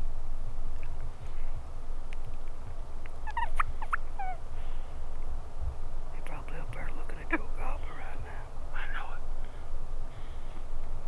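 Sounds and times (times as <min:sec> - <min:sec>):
turkey gobbling: 0:03.2 - 0:04.5.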